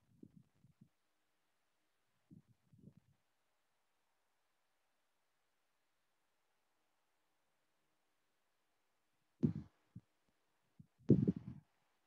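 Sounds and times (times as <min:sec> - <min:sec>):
muffled low thuds: 0:09.4 - 0:10.0, 0:10.8 - 0:11.6.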